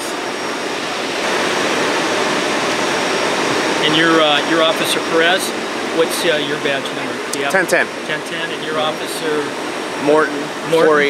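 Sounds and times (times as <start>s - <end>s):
steady rushing roar: 0.0s - 11.0s.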